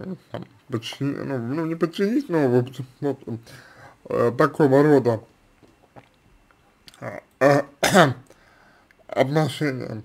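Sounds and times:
man clearing his throat: 0:07.8 - 0:08.2.

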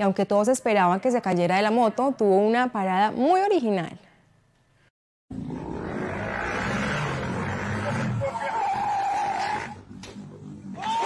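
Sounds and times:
people shouting: 0:07.8 - 0:09.8, 0:10.8 - 0:11.0.

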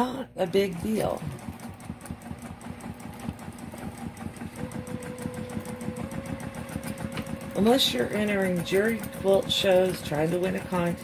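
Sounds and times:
sewing machine motor whine: 0:00.0 - 0:11.0
sewing machine running: 0:00.0 - 0:11.0.

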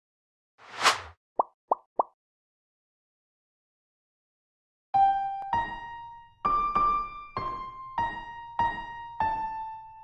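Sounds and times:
short whoosh: 0:00.6 - 0:01.1.

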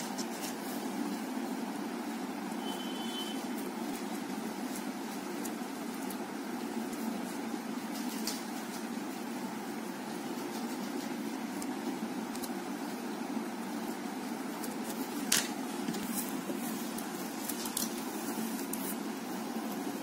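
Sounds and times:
low mechanical hum: 0:00.0 - 0:20.0.

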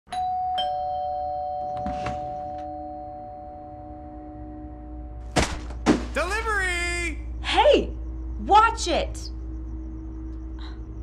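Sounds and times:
two-note doorbell chime: 0:00.1 - 0:04.6.

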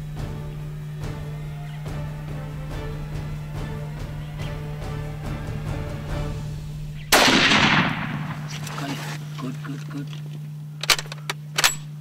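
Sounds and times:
rifle shot with echo: 0:07.1 - 0:08.8
sharp clicks: 0:10.1 - 0:12.0.

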